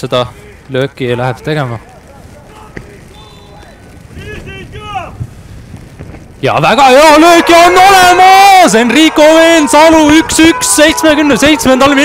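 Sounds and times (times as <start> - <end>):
players shouting calls: 0.0 - 5.2, 6.6 - 12.0.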